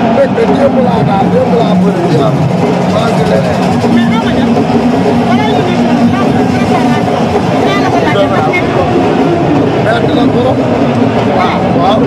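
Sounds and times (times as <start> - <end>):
man talking into microphone: 0.0 - 4.4, 9.8 - 10.6, 11.2 - 12.0
crowd noise: 0.0 - 12.0.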